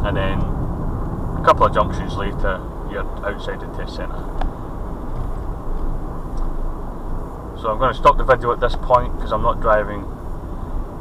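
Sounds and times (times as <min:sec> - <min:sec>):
car cabin road and engine rumble: 0:00.0 - 0:11.0.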